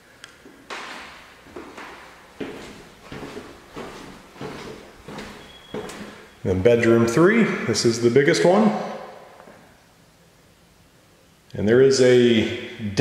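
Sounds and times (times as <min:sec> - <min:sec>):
footsteps on hardwood floor: 0:00.4 - 0:06.4.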